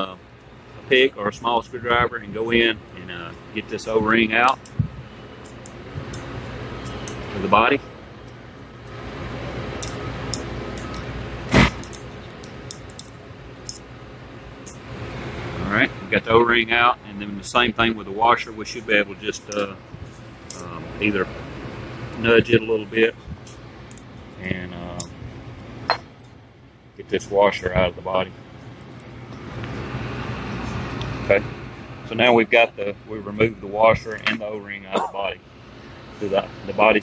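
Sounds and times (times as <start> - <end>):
steady background hum: 0.0 - 37.0.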